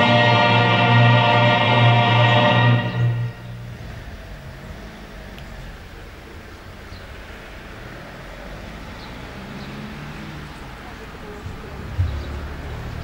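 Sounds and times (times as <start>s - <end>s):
choral music: 0.0s - 4.2s
low outdoor background rumble: 3.1s - 8.8s.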